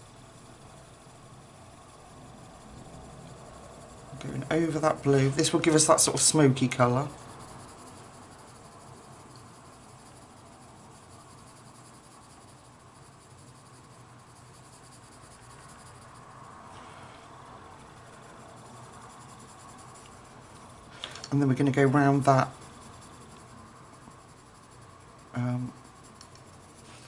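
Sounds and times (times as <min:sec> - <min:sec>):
pencil scratching on paper: 0:00.4 - 0:27.0.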